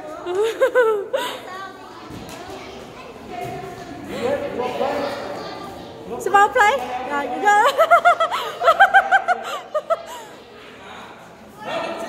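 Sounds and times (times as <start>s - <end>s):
young child laughing: 0.1s - 1.6s, 7.6s - 10.5s.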